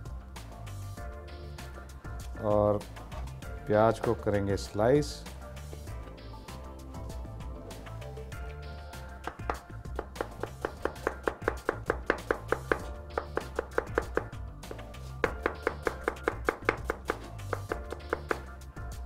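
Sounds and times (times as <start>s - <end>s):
knife chopping on plastic board: 9.2s - 18.5s.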